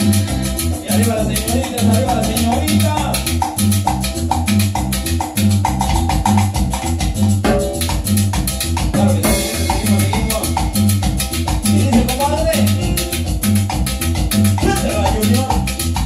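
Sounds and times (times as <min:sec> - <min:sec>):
electronic keyboard melody: 0:00.0 - 0:16.0
timbales beat: 0:01.9 - 0:16.0.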